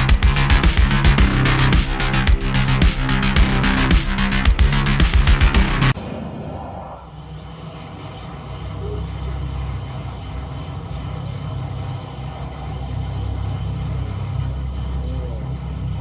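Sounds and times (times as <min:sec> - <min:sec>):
deep steady rumble: 0:00.0 - 0:16.0.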